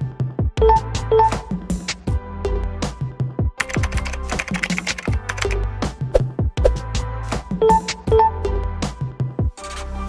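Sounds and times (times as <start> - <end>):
electronic music with steady beat: 6.2 - 8.7.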